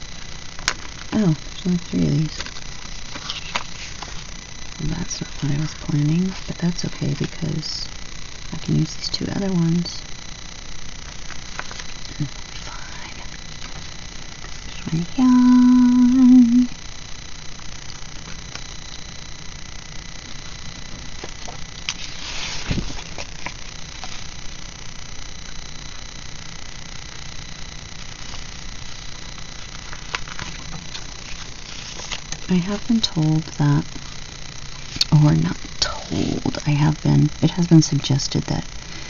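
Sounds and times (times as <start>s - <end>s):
sticker sheets rustling: 2.2s - 4.3s, 21.2s - 24.3s, 29.6s - 32.5s
woman humming: 12.1s - 13.3s, 14.7s - 16.8s.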